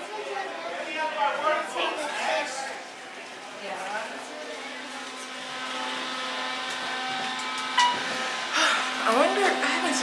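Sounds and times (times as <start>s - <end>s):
elevator hum: 4.6s - 10.0s.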